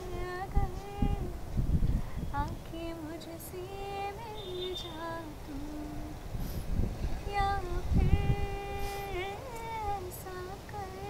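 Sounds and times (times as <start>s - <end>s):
woman singing unaccompanied: 0.0s - 6.4s, 7.0s - 11.0s.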